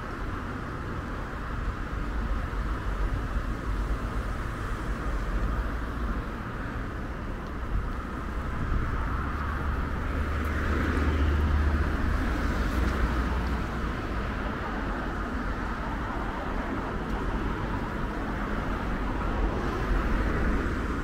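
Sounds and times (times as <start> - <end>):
cars driving past: 0.0 - 21.0.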